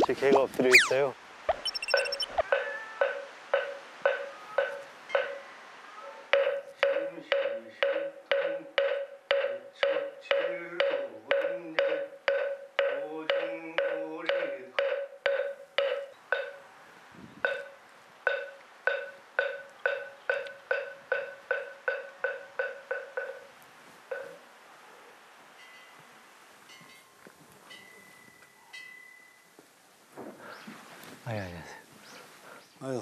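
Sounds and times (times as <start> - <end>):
faint high tones: 0.7 - 2.8
hollow wood block knocks: 6.3 - 16.6.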